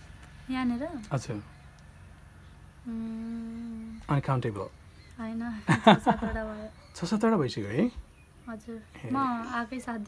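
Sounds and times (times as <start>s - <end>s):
person humming: 2.9s - 3.9s.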